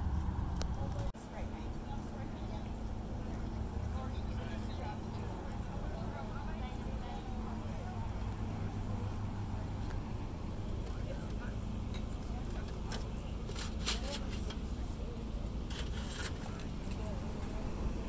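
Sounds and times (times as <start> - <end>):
faint voices: 0.0 - 18.0
low steady rumble: 0.0 - 18.0.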